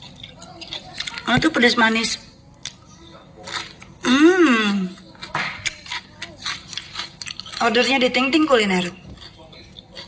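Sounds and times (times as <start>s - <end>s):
crunchy chips being chewed: 0.0s - 1.3s, 2.5s - 4.0s, 4.9s - 10.0s.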